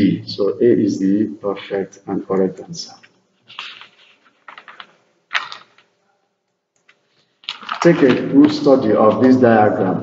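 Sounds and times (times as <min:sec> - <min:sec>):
man's voice: 0:00.0 - 0:03.0, 0:07.8 - 0:10.0.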